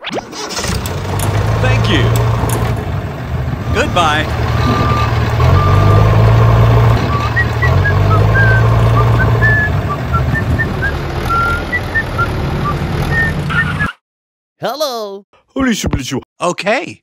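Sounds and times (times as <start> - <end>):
tractor engine running: 0.3 - 13.9.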